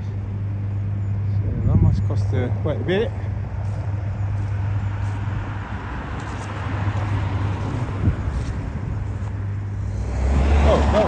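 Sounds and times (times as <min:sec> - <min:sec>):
steady low hum: 0:00.0 - 0:11.0
vehicle passing: 0:01.2 - 0:11.0.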